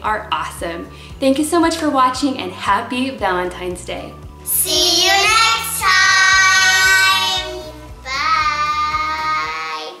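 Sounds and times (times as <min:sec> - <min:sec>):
music with steady beat: 0:00.0 - 0:09.6.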